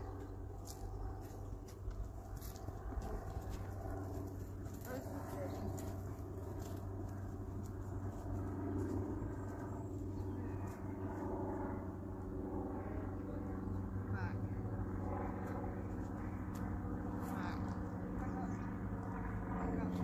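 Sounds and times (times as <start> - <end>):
low mechanical hum: 0.0 - 20.0.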